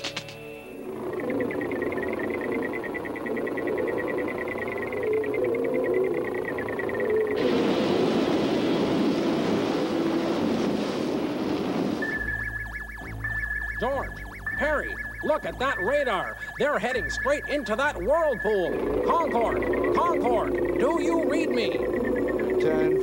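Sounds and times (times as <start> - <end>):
radar electronic tone: 0.0 - 8.4, 12.0 - 23.0
sweeping blips: 0.4 - 7.8, 12.0 - 23.0
low hum: 0.6 - 10.7, 12.0 - 23.0
cartoon engine drone: 0.8 - 9.6, 12.0 - 23.0.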